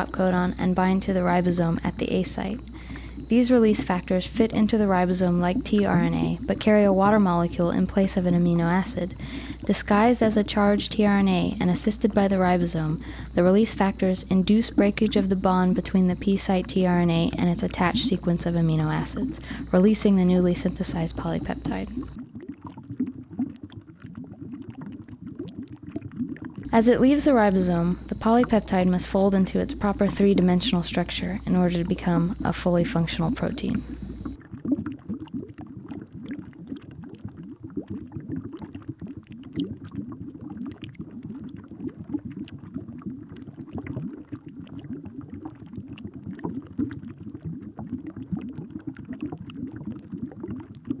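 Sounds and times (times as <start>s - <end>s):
low bubbling and gurgling: 0.0s - 51.0s
small pops and clicks: 21.5s - 26.7s, 33.8s - 51.0s.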